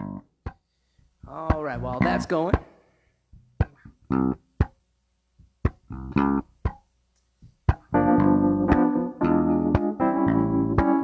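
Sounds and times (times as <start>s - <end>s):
plucked bass guitar note: 0.0s - 0.3s, 1.5s - 2.6s, 8.0s - 11.0s
wavering bass guitar melody: 0.0s - 0.3s, 1.2s - 2.4s, 3.4s - 4.8s, 5.6s - 6.8s, 7.6s - 11.0s.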